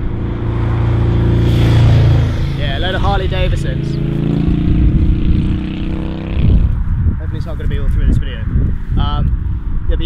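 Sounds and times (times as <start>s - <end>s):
motorcycles riding past: 0.0s - 7.6s.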